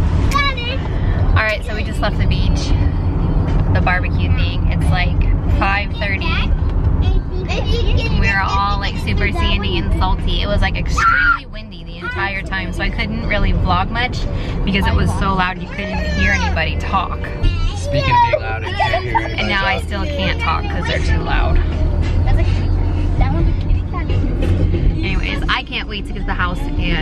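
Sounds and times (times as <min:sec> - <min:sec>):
road and engine rumble: 0:00.0 - 0:27.0
chatter of voices: 0:07.1 - 0:27.0.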